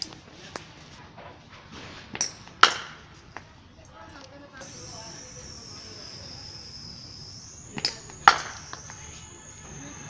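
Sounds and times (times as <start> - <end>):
ball bouncing on concrete: 0.0 - 3.5, 7.7 - 9.8
insects buzzing: 2.2 - 10.0.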